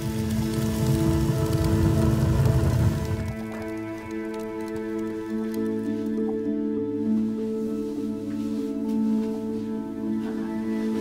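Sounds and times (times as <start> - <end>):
background music drone: 0.0 - 11.0
wood fire crackling: 0.0 - 11.0.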